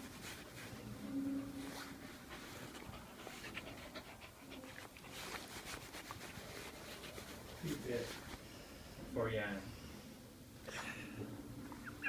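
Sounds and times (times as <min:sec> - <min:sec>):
dog panting faintly: 0:01.4 - 0:08.4.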